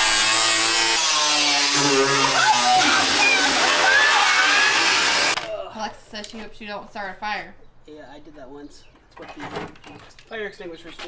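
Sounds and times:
power saw cutting sheet metal: 0.0s - 5.4s.

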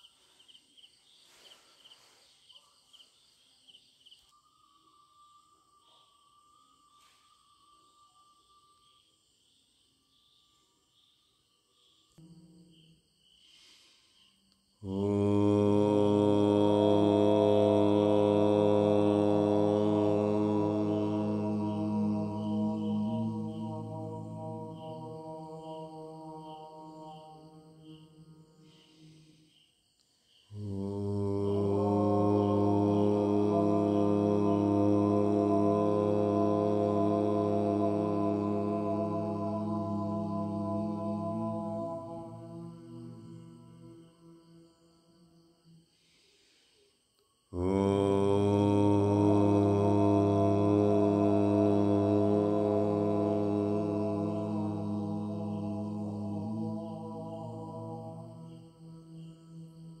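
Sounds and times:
deep chanted om: 4.1s - 60.0s.

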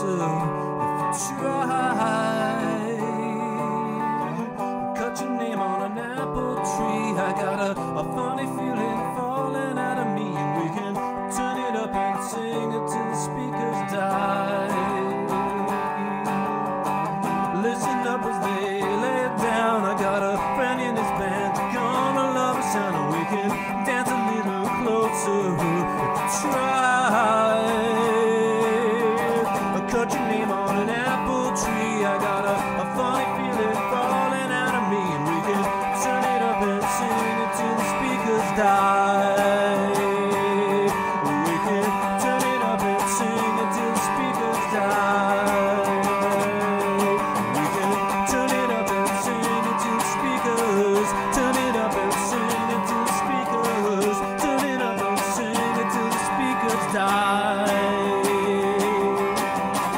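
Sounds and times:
electric guitar with bending notes: 0.0s - 59.9s.

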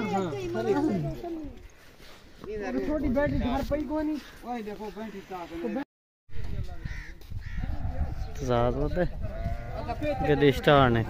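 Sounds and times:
men talking: 2.4s - 11.0s
sheep bleating: 9.3s - 11.0s.

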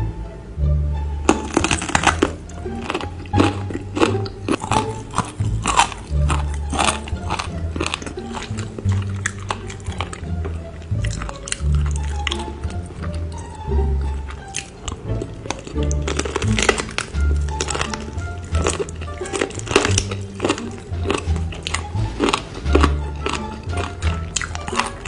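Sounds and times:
background music with low bass: 0.0s - 25.0s
chewing chicken feet: 1.2s - 25.0s
sharp crackling clicks: 1.3s - 3.1s.

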